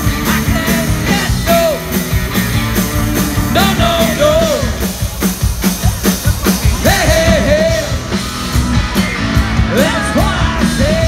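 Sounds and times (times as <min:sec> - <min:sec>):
live rock band playing: 0:00.0 - 0:11.0
steady drum beat: 0:00.0 - 0:11.0
person singing: 0:03.4 - 0:04.9, 0:06.2 - 0:08.2, 0:08.9 - 0:11.0.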